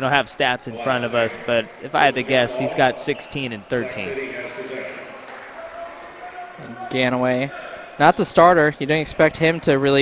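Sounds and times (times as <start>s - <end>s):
man's voice: 0.0s - 10.0s.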